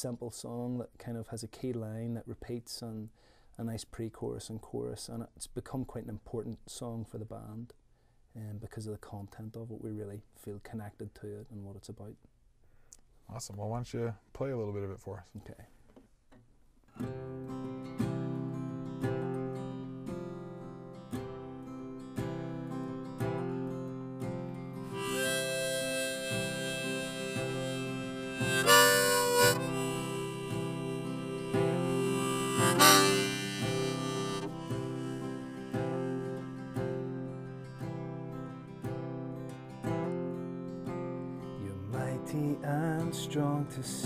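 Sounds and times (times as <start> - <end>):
acoustic guitar strumming: 17.0 - 44.0
harmonica melody: 24.8 - 37.8.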